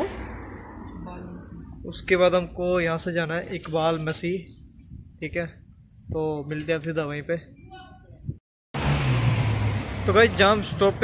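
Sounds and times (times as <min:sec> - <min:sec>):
car driving past: 0:08.8 - 0:11.0.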